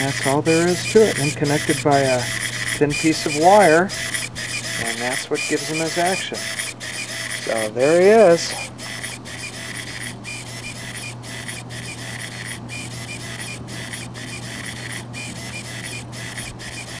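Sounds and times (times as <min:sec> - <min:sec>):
micro servo whirring: 0:00.0 - 0:17.0.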